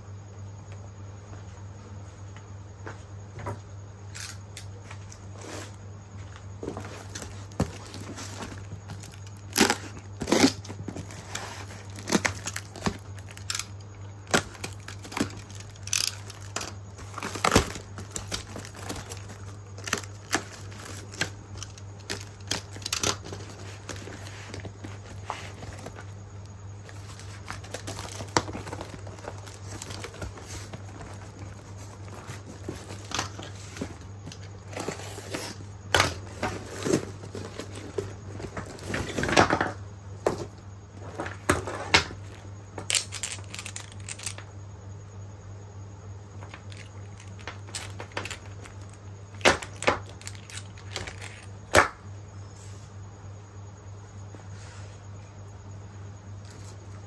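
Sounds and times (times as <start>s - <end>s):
steady low hum: 0.0s - 57.0s
knife slitting paper parcel: 6.6s - 26.1s
paper tearing and crinkling: 6.9s - 13.6s.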